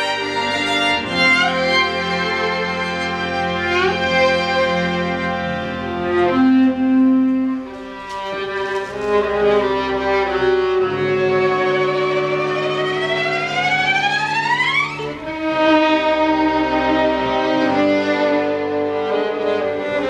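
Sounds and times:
chamber string ensemble: 0:00.0 - 0:20.0
solo violin and viola: 0:00.0 - 0:20.0.

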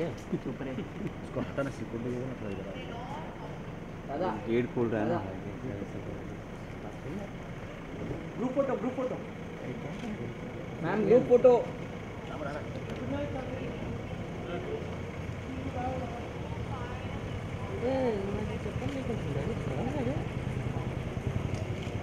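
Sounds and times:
people chattering: 0:00.0 - 0:22.0.

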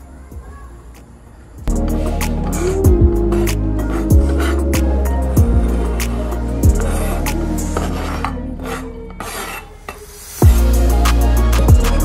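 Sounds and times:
background music: 0:00.0 - 0:12.0
knife scraping chopping board: 0:07.7 - 0:10.0.

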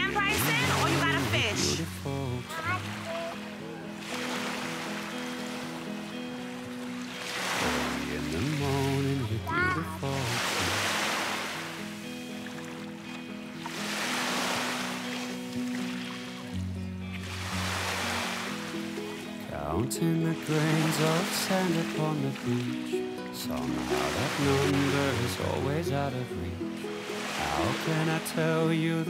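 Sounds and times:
music with held chords: 0:00.0 - 0:10.2, 0:11.2 - 0:29.0
small waves washing ashore: 0:00.0 - 0:29.0.

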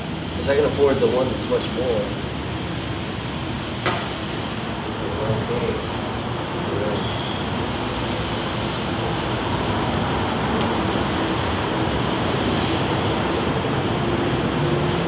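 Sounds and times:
city street traffic roar: 0:00.0 - 0:15.0.

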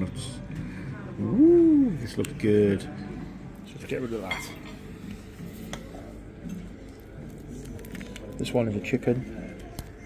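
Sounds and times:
faint restaurant voices: 0:00.0 - 0:10.0.

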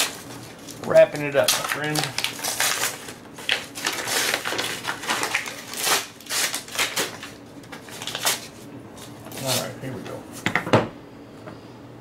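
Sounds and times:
paper tearing and crumpling: 0:00.0 - 0:09.8.

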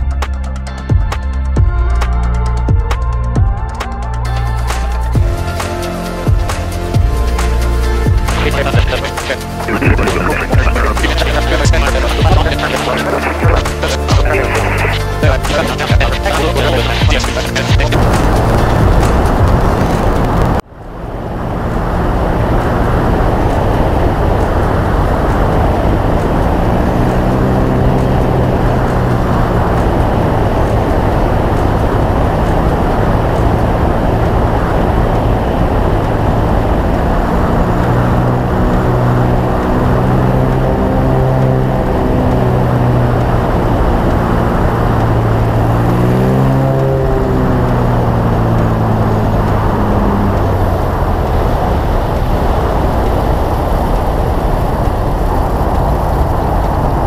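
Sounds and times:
light aircraft engine and propeller: 0:00.0 - 0:57.0
wind rushing over microphone: 0:17.9 - 0:57.0.

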